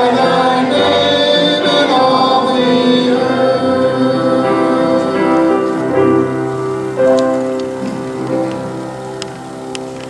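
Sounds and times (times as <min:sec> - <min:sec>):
congregation singing: 0:00.0 - 0:10.0.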